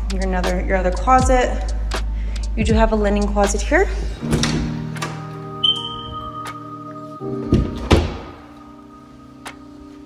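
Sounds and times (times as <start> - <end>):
background music sustained tones: 0.0 - 10.0
closet door thudding shut: 7.5 - 8.4.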